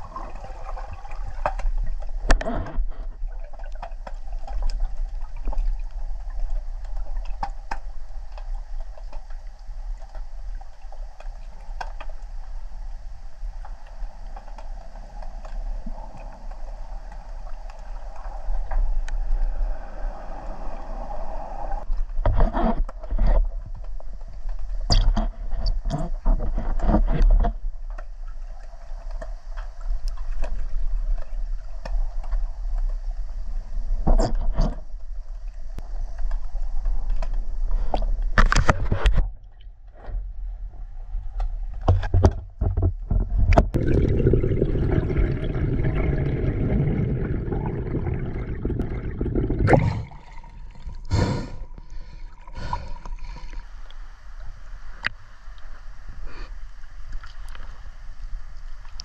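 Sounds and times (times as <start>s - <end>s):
underwater low rumble: 0.0s - 59.0s
water splashes: 43.7s - 55.2s
steady hum: 43.8s - 55.1s.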